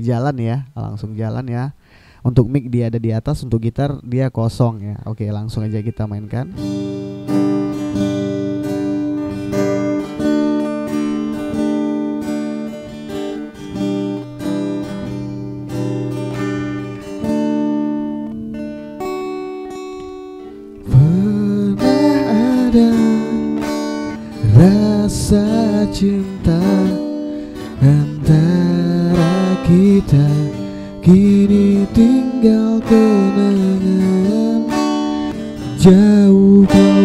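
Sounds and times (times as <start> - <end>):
acoustic guitar strumming chords: 5.6 - 37.0
man singing: 20.8 - 37.0.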